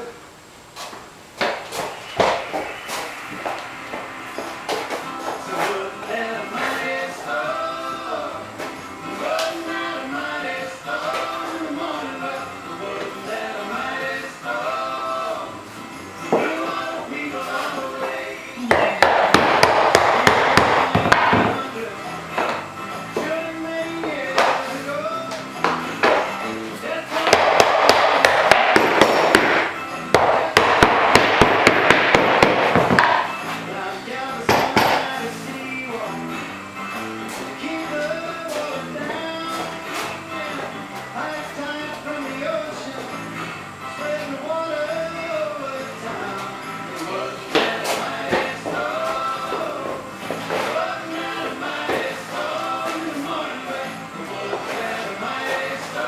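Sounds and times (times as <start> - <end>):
background music: 1.8 - 56.0.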